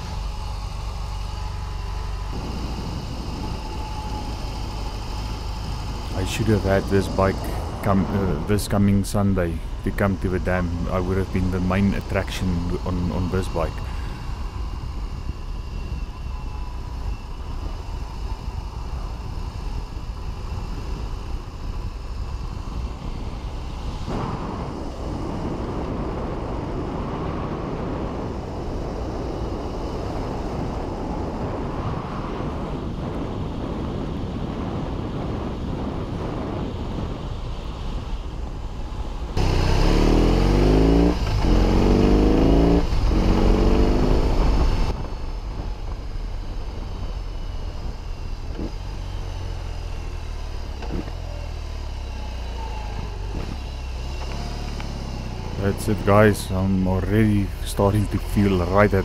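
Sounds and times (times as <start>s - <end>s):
motorcycle engine revving: 0.0s - 28.4s, 38.9s - 59.0s
road and wind noise: 0.0s - 59.0s.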